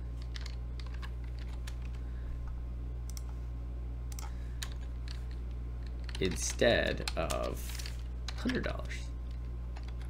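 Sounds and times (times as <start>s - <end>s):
steady low hum: 0.0s - 10.0s
keyboard keys clicking: 0.2s - 2.0s, 4.1s - 7.6s.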